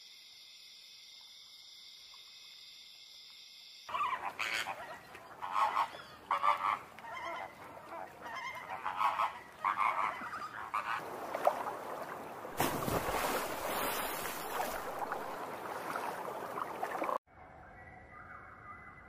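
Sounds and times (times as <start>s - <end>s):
flamingos honking: 3.9s - 11.1s.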